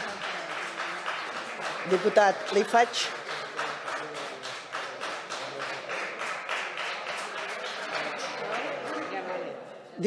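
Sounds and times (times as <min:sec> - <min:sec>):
group of people clapping: 0:00.0 - 0:09.6.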